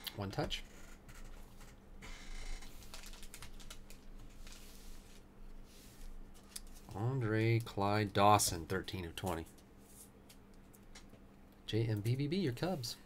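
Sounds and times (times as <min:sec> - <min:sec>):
faint low hum: 0:00.0 - 0:13.0
trading cards sliding and rustling: 0:04.2 - 0:06.9.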